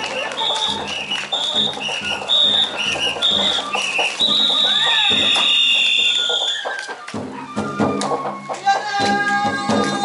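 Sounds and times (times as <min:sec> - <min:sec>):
drumming: 0:00.0 - 0:10.0.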